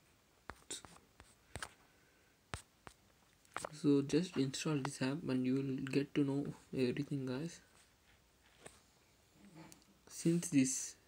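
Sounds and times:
faint sharp clicks and taps: 0:00.5 - 0:01.8, 0:02.5 - 0:05.0.

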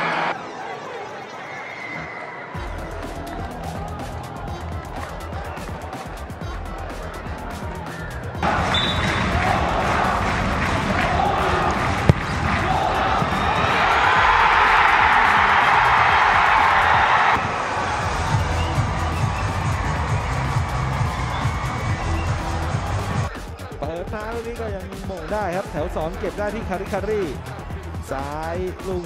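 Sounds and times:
stadium crowd cheering: 0:00.0 - 0:23.3
background music with steady beat: 0:02.6 - 0:29.0.

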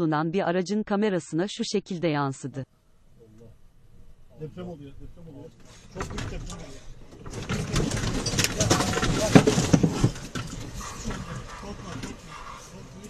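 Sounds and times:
car rattling and clattering: 0:03.6 - 0:13.0
agitated voices: 0:04.2 - 0:13.0.

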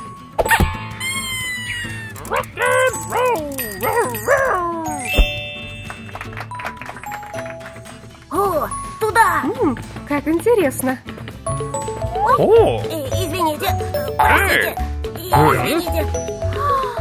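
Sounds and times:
light cartoon background music: 0:00.0 - 0:17.0.

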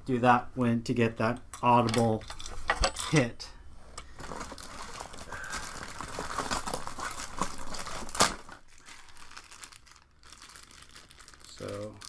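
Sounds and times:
plastic packaging crinkling: 0:04.1 - 0:12.0.

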